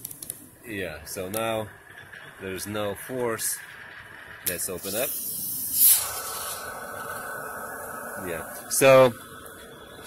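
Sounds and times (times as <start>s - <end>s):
pool jet rushing water and air: 0.6s - 10.0s.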